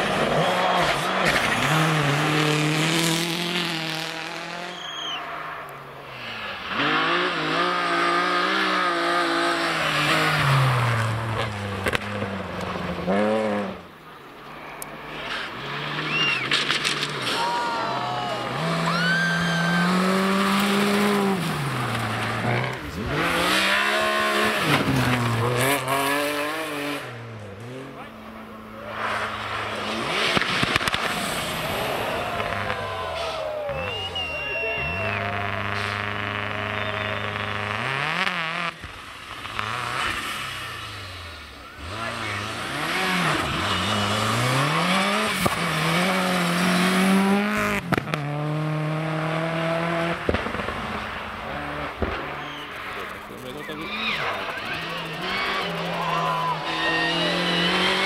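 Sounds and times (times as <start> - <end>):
rally car engines at full throttle: 0.0 - 58.0.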